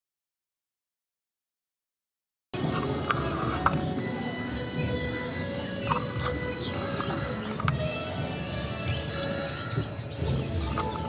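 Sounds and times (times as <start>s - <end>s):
stone grinding paste on slab: 2.6s - 4.1s, 5.7s - 11.0s
background music: 2.6s - 11.0s.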